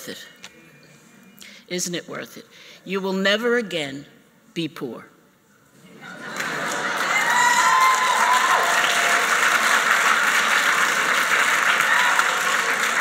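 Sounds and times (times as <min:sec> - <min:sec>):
audience clapping: 0:06.2 - 0:13.0.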